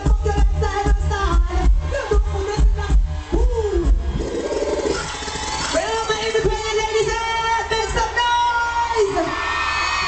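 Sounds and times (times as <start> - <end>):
heavy bass thumps: 0.0 - 4.3.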